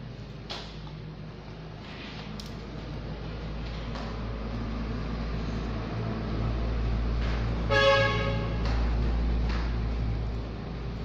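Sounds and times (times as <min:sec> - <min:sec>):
horn-like toot: 0:07.7 - 0:08.6.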